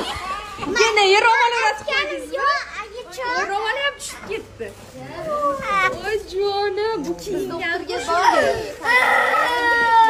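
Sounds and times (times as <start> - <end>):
girl crying loudly: 8.0 - 10.0.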